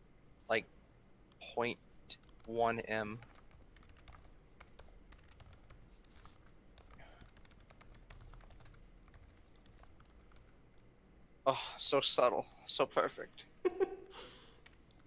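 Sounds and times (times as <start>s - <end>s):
mechanical keyboard typing: 3.2s - 10.6s.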